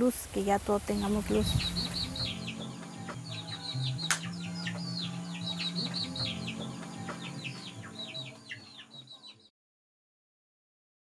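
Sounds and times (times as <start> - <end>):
background music low held notes: 0.0 - 9.5
birds chirping: 0.0 - 9.5.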